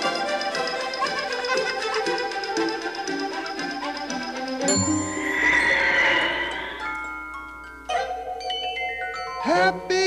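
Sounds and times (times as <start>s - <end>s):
wavering magic sound effect: 4.6s - 8.2s.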